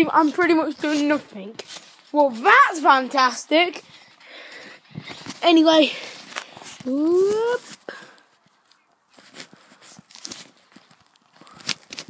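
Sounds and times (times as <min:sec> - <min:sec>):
boy whooping: 0:06.8 - 0:07.7.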